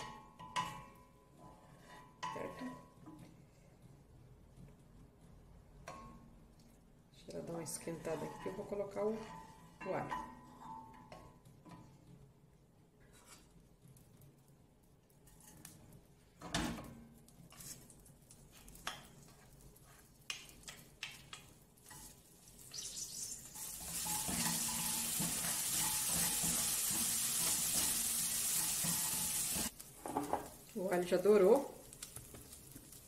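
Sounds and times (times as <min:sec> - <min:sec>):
garlic sizzling in hot fat: 0:17.5 - 0:33.0.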